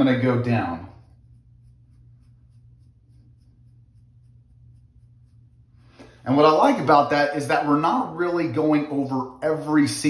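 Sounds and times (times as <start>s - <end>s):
brush scratching beard stubble: 0.0s - 8.2s
low steady hum: 0.0s - 10.0s.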